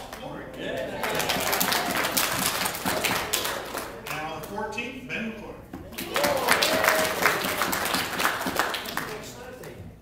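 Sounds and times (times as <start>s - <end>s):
congregation applauding: 1.0s - 4.0s, 6.0s - 9.6s.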